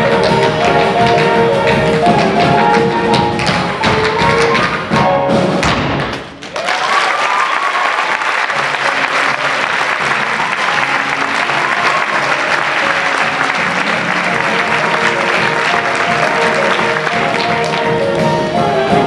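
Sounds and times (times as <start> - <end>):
theatre band playing: 0.0 - 19.0
audience applauding: 6.4 - 18.2.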